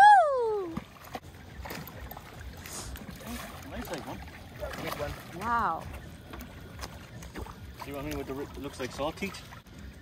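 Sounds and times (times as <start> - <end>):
water splashing: 0.0 - 10.0.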